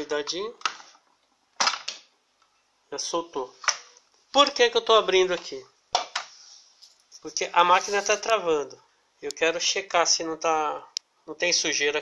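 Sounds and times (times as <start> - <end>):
plastic cover snapping: 1.6 - 2.1.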